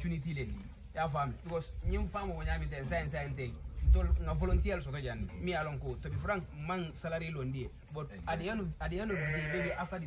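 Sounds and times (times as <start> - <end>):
sheep bleating: 9.0 - 10.0.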